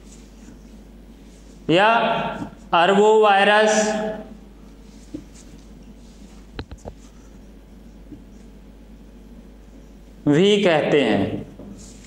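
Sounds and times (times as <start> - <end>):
steady low hum: 0.0 - 12.0
marker pen on whiteboard: 4.7 - 8.6.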